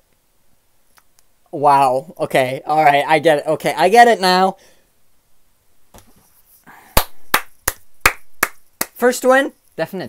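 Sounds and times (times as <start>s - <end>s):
person clapping hands: 6.9s - 9.0s.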